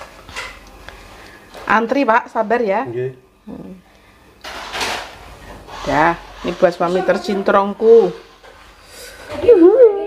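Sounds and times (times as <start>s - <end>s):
rubbing scraping noise: 4.5s - 9.2s.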